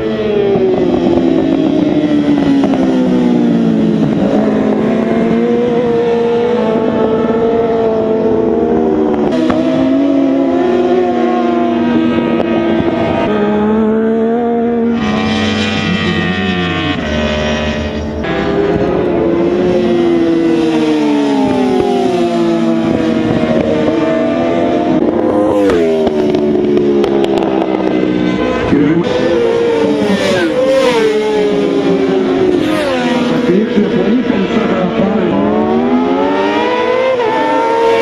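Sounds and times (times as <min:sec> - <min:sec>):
motorbike engines revving: 0:00.0 - 0:38.0.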